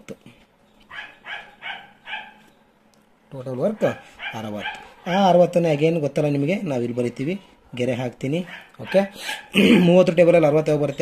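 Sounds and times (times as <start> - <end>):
dog barking: 0.9 - 2.5, 3.7 - 6.0, 8.4 - 9.5
man speaking: 3.3 - 11.0.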